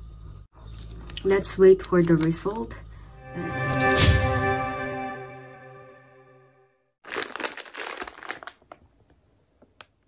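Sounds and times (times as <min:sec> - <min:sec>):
plastic pouch crinkling: 0:07.0 - 0:09.2.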